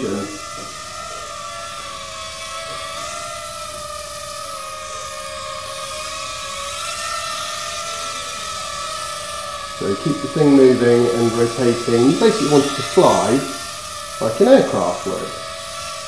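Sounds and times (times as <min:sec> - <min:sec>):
quadcopter propellers whining: 0:00.0 - 0:16.0.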